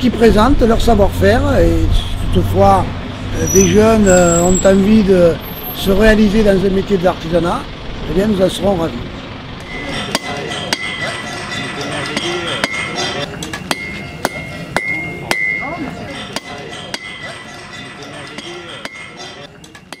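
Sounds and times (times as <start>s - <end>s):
hammer striking iron on anvil: 9.7s - 20.0s.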